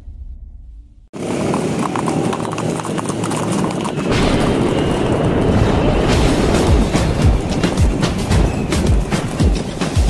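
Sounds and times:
horse hooves clip-clopping on pavement: 1.2s - 10.0s.

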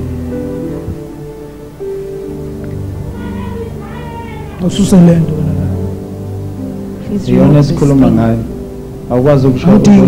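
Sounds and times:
soft keyboard music: 0.0s - 10.0s
man's drawn-out cry: 3.1s - 5.3s.

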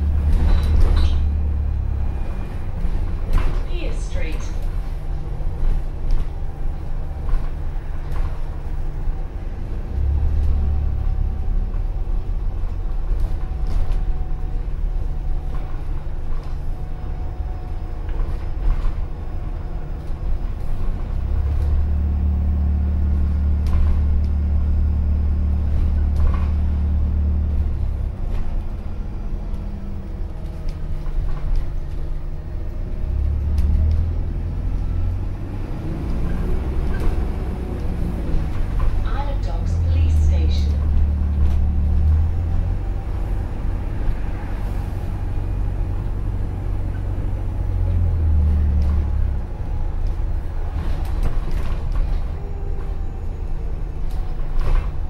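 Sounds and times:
bus drivetrain drone: 0.0s - 55.0s.

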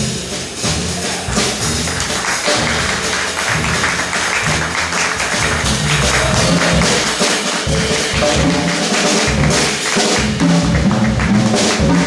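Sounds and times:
drum kit with cymbals: 0.0s - 12.0s
upright double bass: 0.0s - 12.0s.

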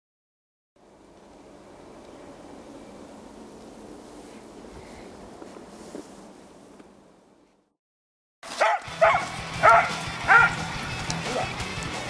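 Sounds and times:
dog barking: 8.5s - 11.6s
background music: 8.7s - 12.0s.

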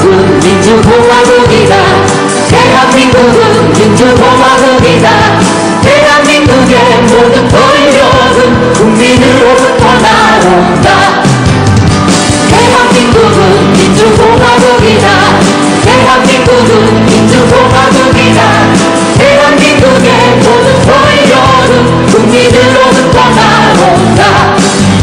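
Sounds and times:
woman singing into microphone: 0.0s - 11.6s, 12.4s - 25.0s
live band with acoustic guitars: 0.0s - 25.0s.

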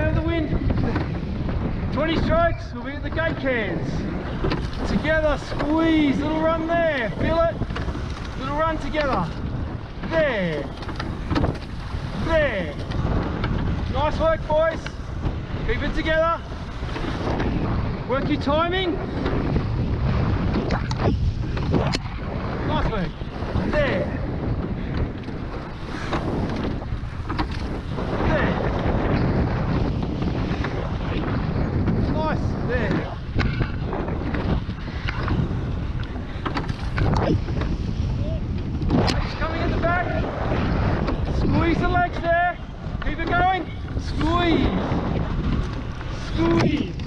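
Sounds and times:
oars working through water: 0.0s - 47.0s
water rushing along hull: 0.0s - 47.0s
wind buffeting microphone: 0.0s - 47.0s.

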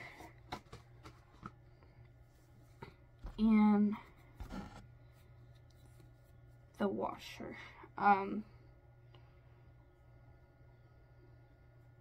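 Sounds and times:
low hum: 1.1s - 12.0s.

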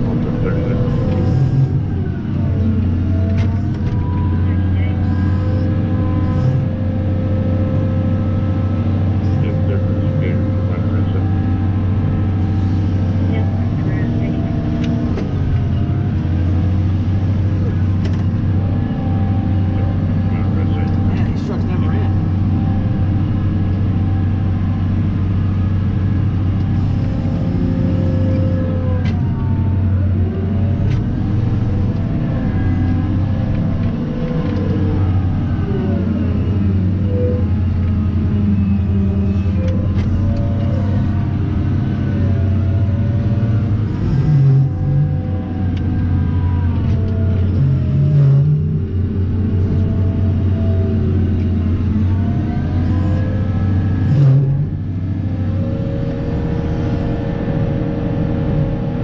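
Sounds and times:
diesel engine whining under load: 0.0s - 59.0s.

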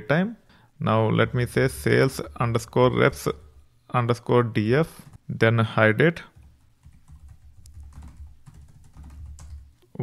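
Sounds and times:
computer keyboard typing: 6.3s - 9.7s.

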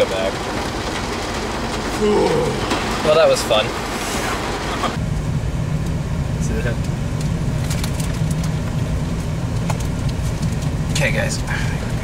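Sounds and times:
car cabin road noise: 0.0s - 12.0s
low voice murmur: 2.0s - 2.7s.

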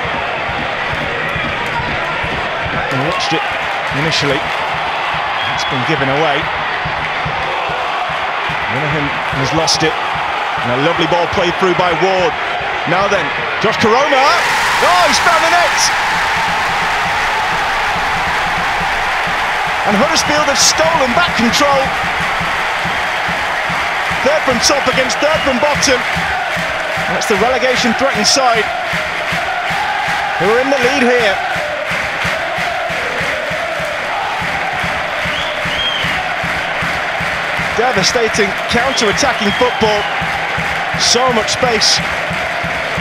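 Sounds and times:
stadium crowd cheering: 0.0s - 43.0s
steady low beat: 15.4s - 30.4s.

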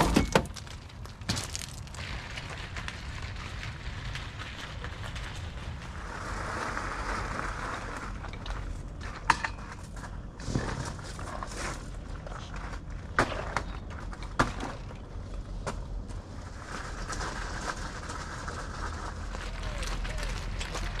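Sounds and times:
cart wheels rolling over gravel: 0.0s - 21.0s
footsteps crunching on gravel: 0.4s - 6.3s.

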